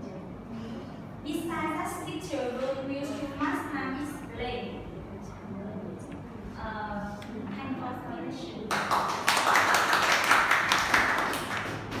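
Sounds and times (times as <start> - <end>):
people clapping: 8.7 - 12.0.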